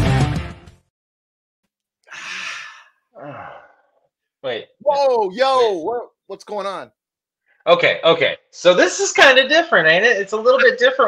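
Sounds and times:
man's voiced exhale: 2.1s - 3.9s.

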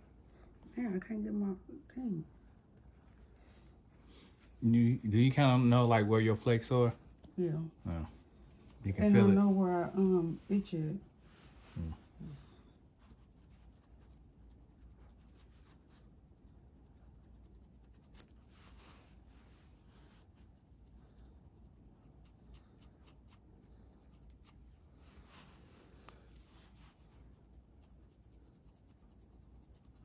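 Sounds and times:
comb scratching scalp: 0.8s - 30.0s.

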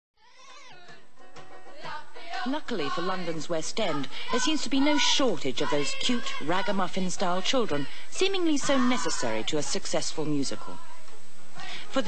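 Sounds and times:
high singing voices: 0.2s - 12.0s.

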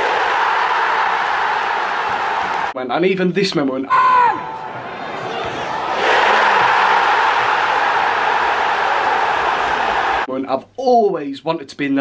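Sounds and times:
stadium crowd cheering: 0.0s - 2.8s, 4.0s - 10.3s.

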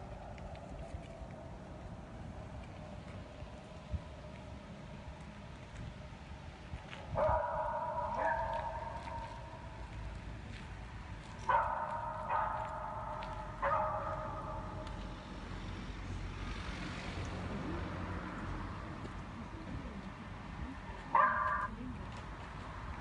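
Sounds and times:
dogs baying: 7.2s - 9.5s, 11.4s - 15.0s, 21.1s - 21.7s.

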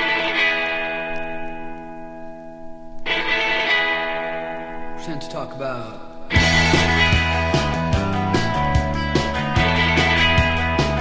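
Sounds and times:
guitar chords ringing: 0.0s - 11.0s.

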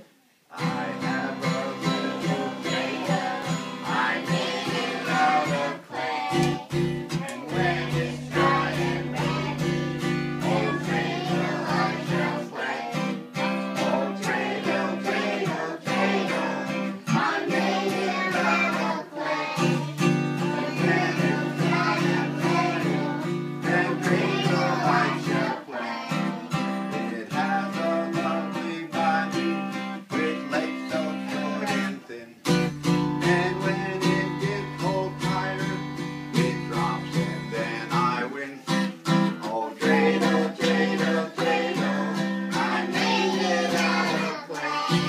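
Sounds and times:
voices singing: 0.5s - 32.4s, 33.2s - 45.0s
acoustic guitar strumming: 0.5s - 45.0s.

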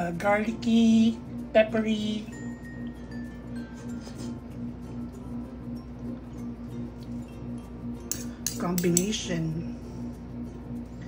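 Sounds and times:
background music: 0.0s - 11.0s
metal spoon clinking ceramic bowl: 8.0s - 9.2s.

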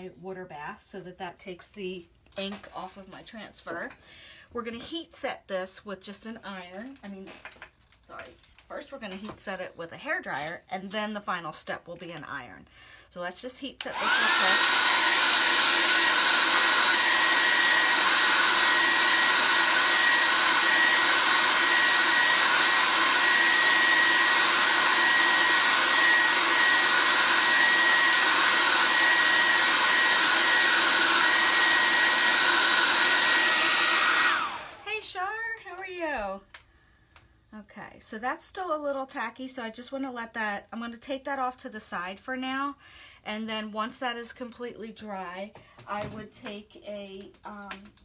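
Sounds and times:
hair dryer running with high whine: 13.6s - 35.1s.

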